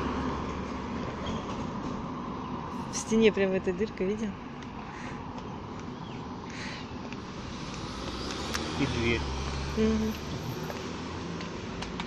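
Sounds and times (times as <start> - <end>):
vehicle passing with tyre noise: 0.0 - 12.0.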